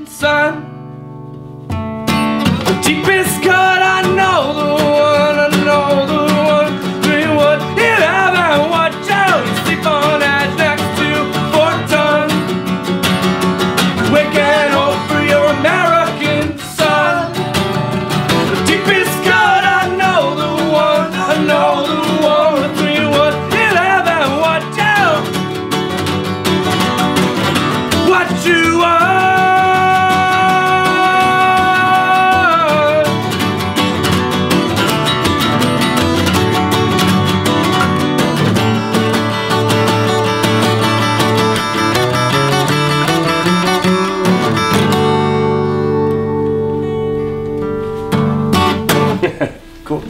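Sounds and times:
man singing: 0:00.0 - 0:00.8, 0:02.6 - 0:12.6, 0:14.0 - 0:25.4, 0:27.8 - 0:33.6, 0:42.6 - 0:45.0
acoustic guitars strumming: 0:00.0 - 0:50.0.

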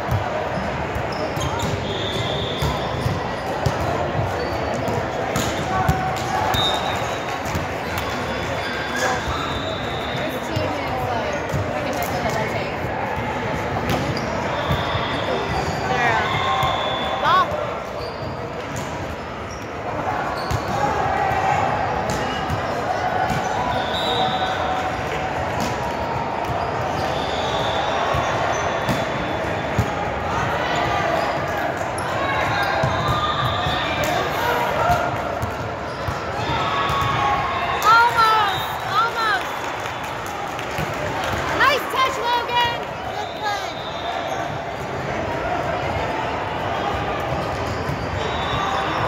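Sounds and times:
voices of players and spectators: 0:00.0 - 0:49.0
sneakers squeaking on floor: 0:00.1 - 0:12.3, 0:13.8 - 0:20.9, 0:26.5 - 0:30.0, 0:47.3 - 0:49.0
shoes squeaking on court: 0:00.5 - 0:05.7, 0:13.9 - 0:20.7.

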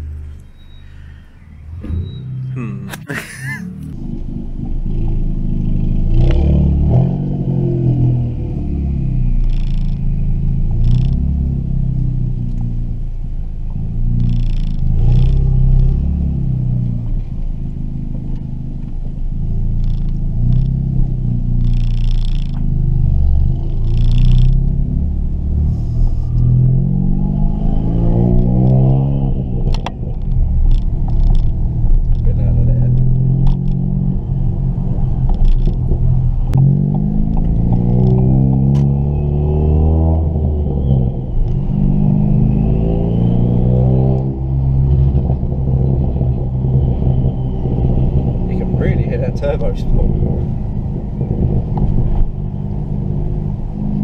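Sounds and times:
car engine revving: 0:19.4 - 0:54.0.

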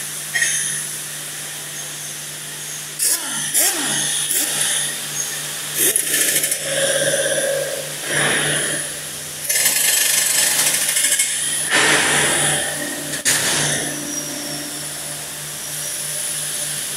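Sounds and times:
hum of shop machinery: 0:00.0 - 0:16.9
power tool on steel frame: 0:02.4 - 0:16.9.

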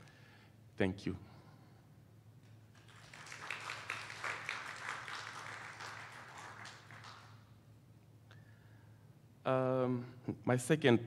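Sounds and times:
audience applauding: 0:02.8 - 0:07.5.

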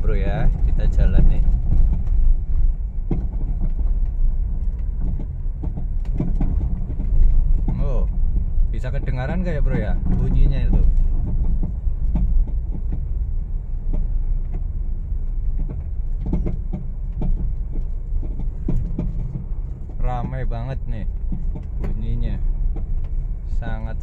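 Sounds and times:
low road and engine rumble: 0:00.0 - 0:24.0
suspension clunking knocks: 0:00.0 - 0:24.0.

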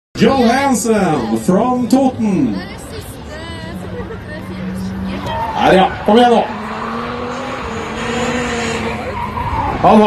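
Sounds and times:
tyres skidding and squealing: 0:02.9 - 0:10.0
car engine at high pitch: 0:03.6 - 0:10.0.

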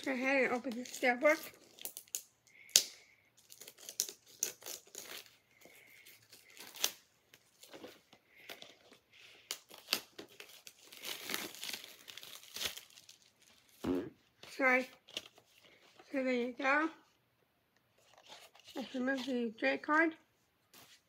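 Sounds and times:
plastic wrap crinkling: 0:00.0 - 0:02.7, 0:03.4 - 0:13.8.

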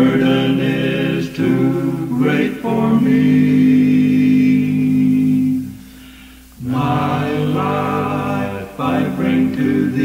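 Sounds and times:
a cappella quartet singing: 0:00.0 - 0:10.0.

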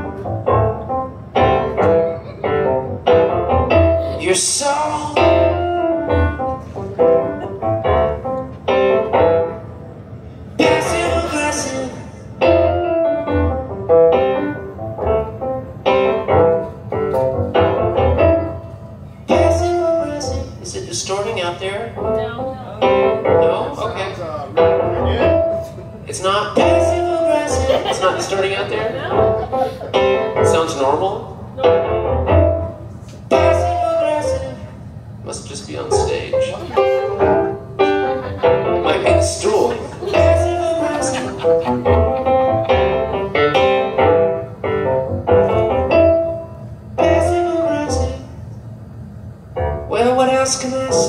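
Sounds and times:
electric piano chords: 0:00.0 - 0:51.0.

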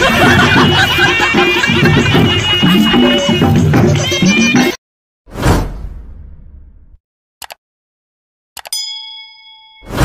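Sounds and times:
bright bell ding: 0:08.7 - 0:10.0.

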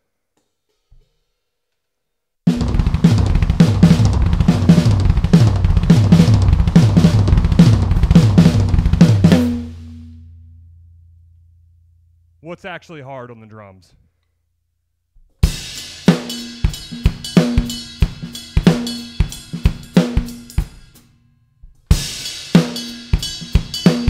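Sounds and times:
drum kit playing fast fills: 0:02.5 - 0:10.2, 0:15.4 - 0:21.0, 0:21.9 - 0:24.0
low tom ringing: 0:07.3 - 0:12.8.

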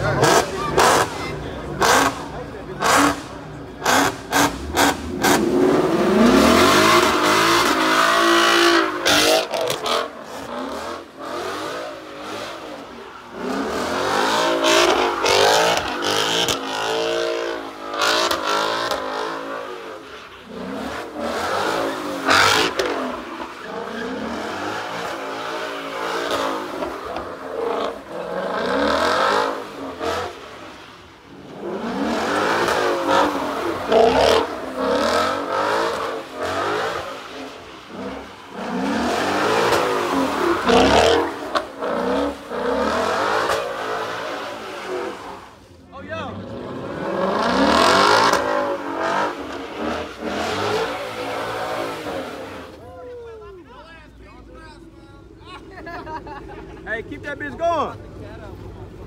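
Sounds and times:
car engine revving: 0:00.0 - 0:52.8.

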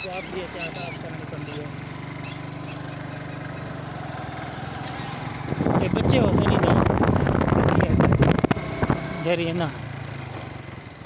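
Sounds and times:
motorcycle engine running: 0:00.0 - 0:11.0
wind rushing on microphone: 0:05.4 - 0:09.2.

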